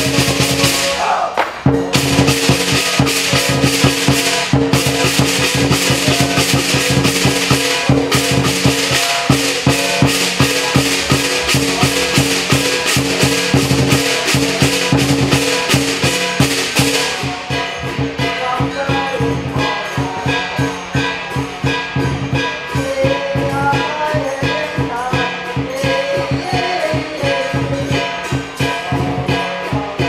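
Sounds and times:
big drum beating: 0.0 - 30.0
cymbals clashing: 0.0 - 30.0
gong: 0.0 - 30.0.

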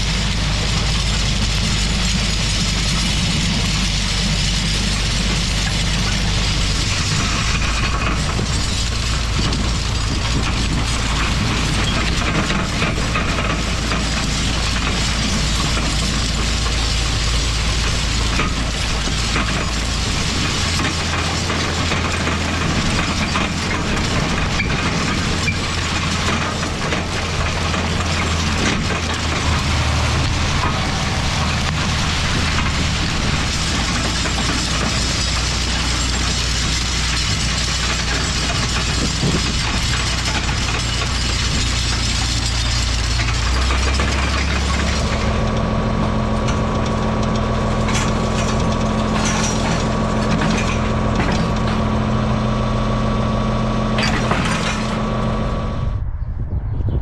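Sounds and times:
chain harrow rattling over soil: 0.0 - 55.5
tractor engine running: 0.0 - 56.2.

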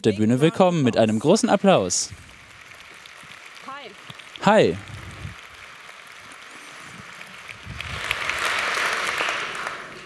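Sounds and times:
audience applauding: 1.0 - 10.0.

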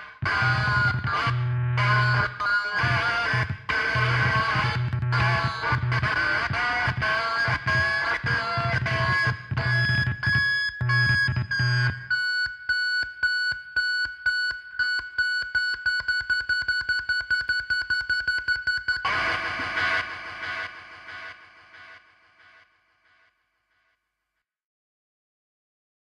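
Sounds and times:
noise-rock band playing: 0.2 - 10.2.

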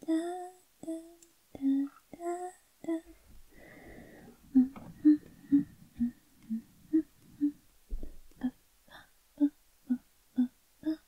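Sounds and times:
woman's breathy exhale: 3.5 - 4.4.

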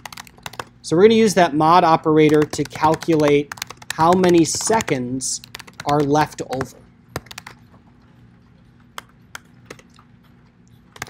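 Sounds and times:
typing on computer keyboard: 0.0 - 0.7, 2.2 - 7.6.

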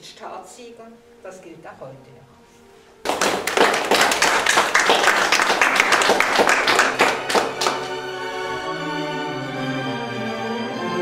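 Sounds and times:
people clapping: 3.0 - 8.2.

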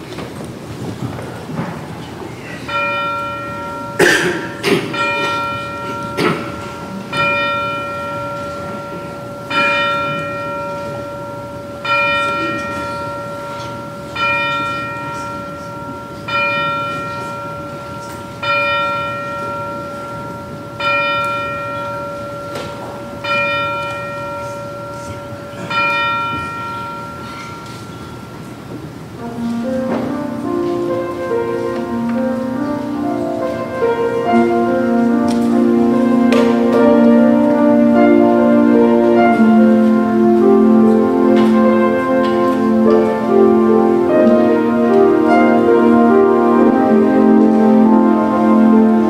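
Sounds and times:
church bell tolling: 2.6 - 49.0.

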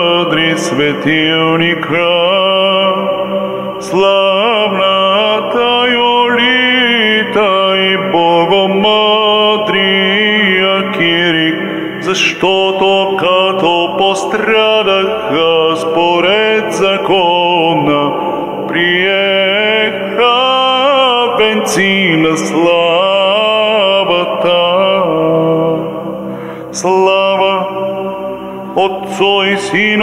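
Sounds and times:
man singing a church chant: 0.0 - 30.0.

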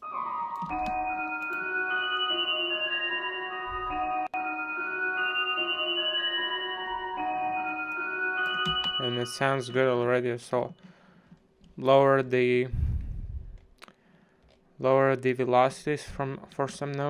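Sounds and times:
dark synth melody: 0.0 - 10.3.

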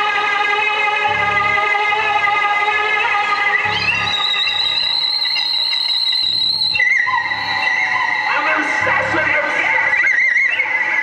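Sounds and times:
high-pitched electronic whine: 1.0 - 11.0
lower held tone: 1.1 - 10.8
sustained electronic tones: 3.6 - 11.0.

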